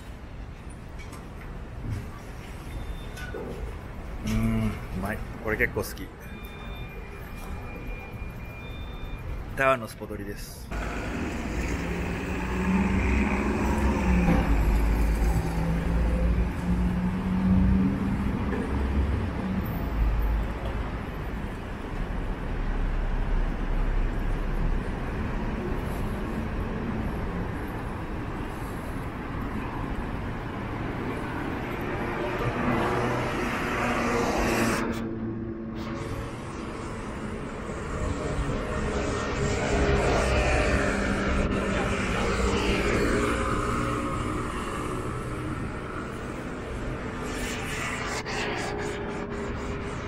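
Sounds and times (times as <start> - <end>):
road traffic rumble: 10.6 - 50.0.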